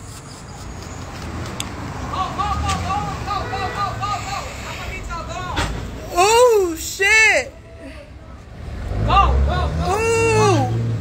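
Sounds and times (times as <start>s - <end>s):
vehicle engines rumbling: 0.0s - 11.0s.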